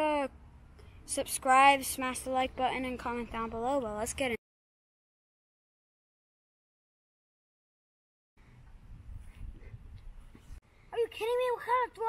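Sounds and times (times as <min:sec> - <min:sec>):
wind rumble on microphone: 0:08.5 - 0:10.6
boy's raised voice: 0:11.0 - 0:12.0.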